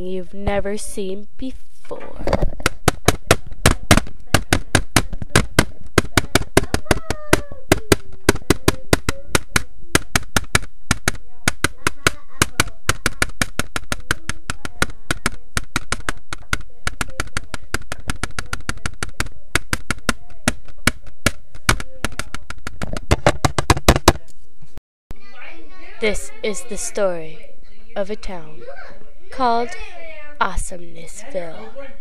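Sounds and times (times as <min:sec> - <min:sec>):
faint voices: 0:01.8 - 0:22.5, 0:25.1 - 0:32.0.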